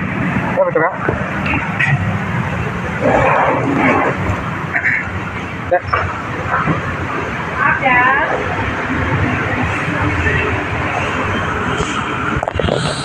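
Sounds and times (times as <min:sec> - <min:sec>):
low hum: 0:00.0 - 0:13.0
traffic noise: 0:00.0 - 0:13.0
people talking: 0:00.6 - 0:04.2, 0:05.6 - 0:06.8, 0:07.6 - 0:08.6.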